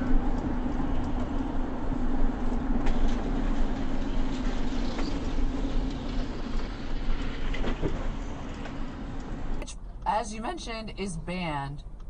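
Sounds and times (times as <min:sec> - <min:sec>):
engine drone inside vehicle: 0:00.0 - 0:12.0.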